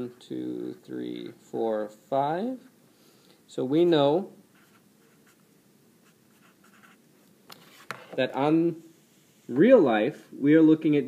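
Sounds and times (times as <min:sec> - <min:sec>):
marker scratching on paper: 0:04.6 - 0:05.4, 0:06.0 - 0:07.0.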